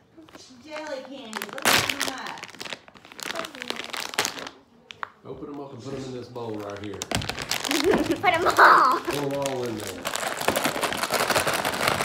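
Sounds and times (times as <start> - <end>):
plastic wrapper crinkling: 0.2 - 12.0.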